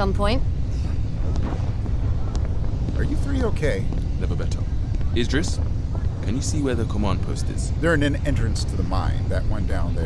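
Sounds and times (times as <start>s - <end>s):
aircraft engines rumbling: 0.0s - 10.0s.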